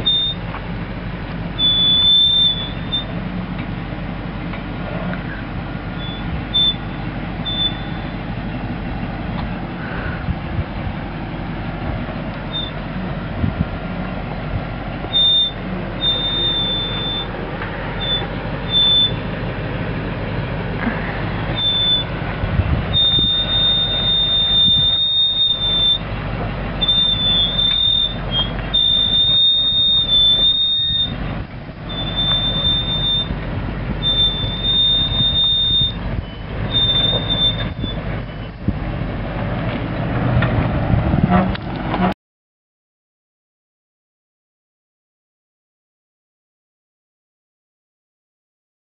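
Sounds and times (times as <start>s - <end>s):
brakes squealing: 0.0s - 42.2s
engine running low: 0.0s - 42.2s.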